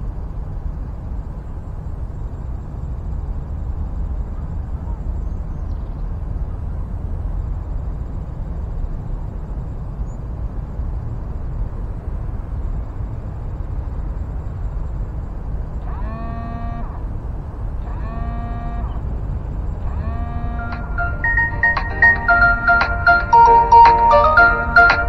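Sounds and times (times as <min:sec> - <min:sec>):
pitched musical tones: 0:20.0 - 0:25.0.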